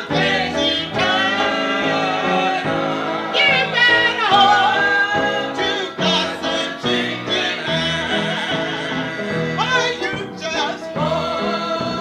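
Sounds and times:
acoustic guitar: 0.0 - 12.0
man singing gospel: 0.0 - 12.0.

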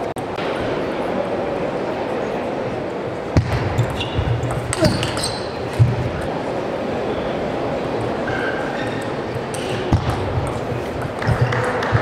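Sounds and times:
arena crowd murmur: 0.0 - 12.0
table tennis ball bouncing: 3.4 - 6.4, 8.0 - 12.0.

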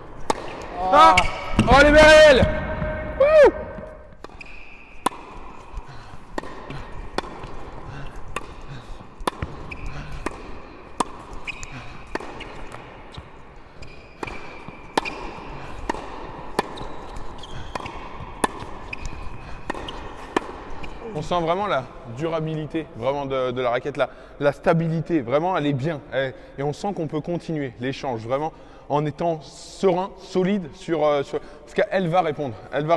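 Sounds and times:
tennis ball hit and bouncing: 0.0 - 21.0.

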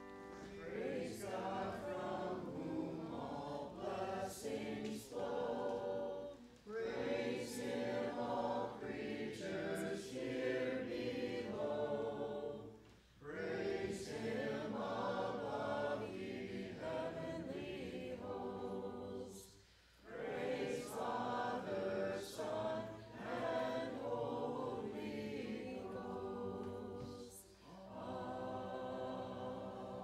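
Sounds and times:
congregation singing a hymn: 0.0 - 30.0.

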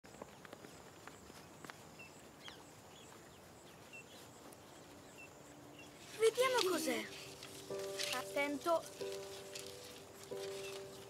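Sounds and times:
bird chirps: 1.9 - 11.0.

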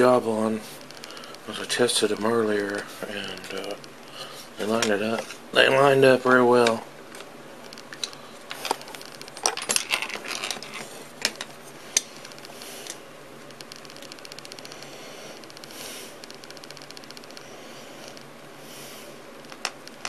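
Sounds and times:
fast even ticking of threading: 0.0 - 4.8, 13.5 - 18.2
screw hardware clicks and rattles: 7.7 - 13.0.

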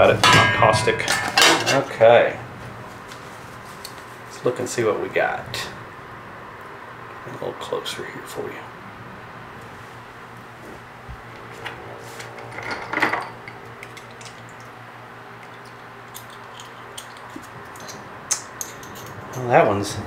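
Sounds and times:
small metal parts clinking: 15.4 - 19.7.

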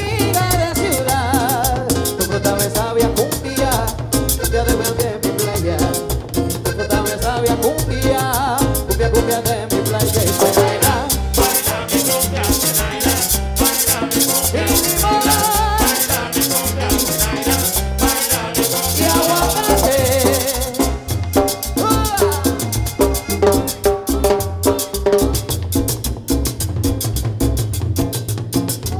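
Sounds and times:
accordion: 0.0 - 27.0
latin percussion: 0.0 - 28.9
live dance band playing: 0.0 - 28.9
pulsing bass beat: 0.0 - 28.9.

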